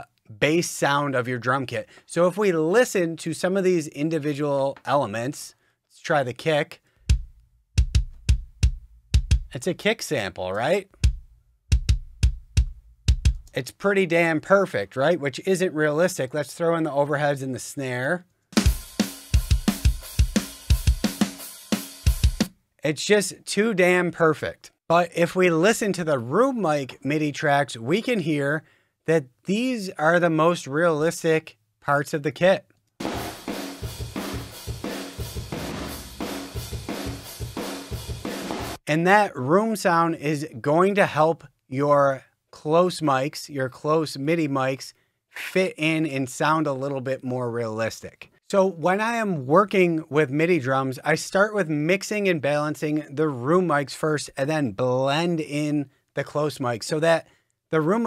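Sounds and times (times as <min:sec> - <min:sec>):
drum kit groove: 0:07.0 - 0:13.8, 0:18.5 - 0:22.6, 0:33.0 - 0:38.8
kick drum hits: 0:07.1 - 0:09.5, 0:11.0 - 0:13.4, 0:33.0 - 0:34.9.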